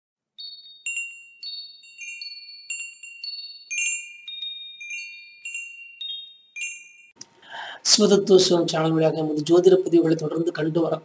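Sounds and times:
wind chimes tinkling: 0.4s - 7.2s.

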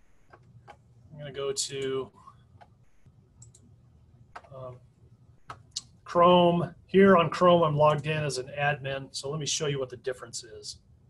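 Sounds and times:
computer mouse clicks: 0.1s - 0.8s, 2.6s - 3.7s, 4.3s - 4.6s.

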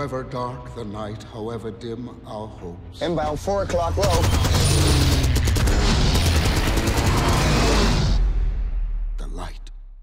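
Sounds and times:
dramatic film music: 0.0s - 9.8s.

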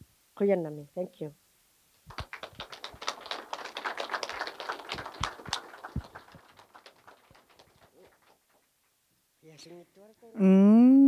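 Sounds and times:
audience applauding: 2.1s - 8.8s.

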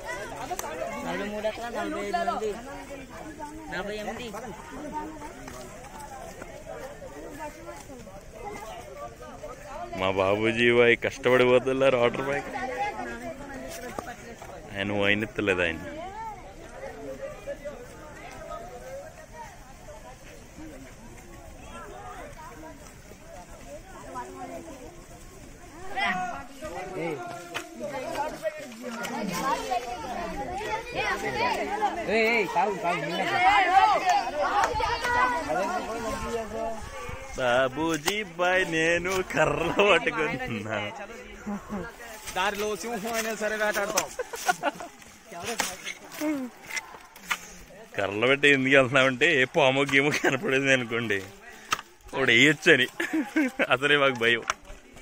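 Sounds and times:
boys chattering: 0.0s - 55.0s
people talking and calling: 0.0s - 55.0s.

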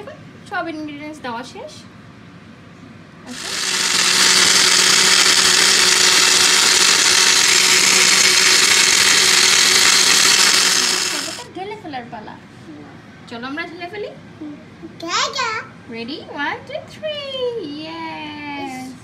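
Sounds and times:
blender churning ice: 3.3s - 11.5s.

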